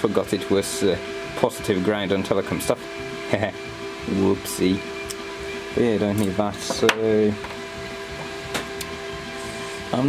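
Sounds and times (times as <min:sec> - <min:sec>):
electric fans humming: 0:00.0 - 0:10.0.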